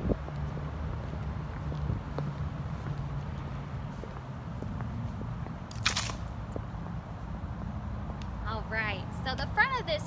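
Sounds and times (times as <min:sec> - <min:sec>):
footsteps on brick path: 0:00.0 - 0:09.8.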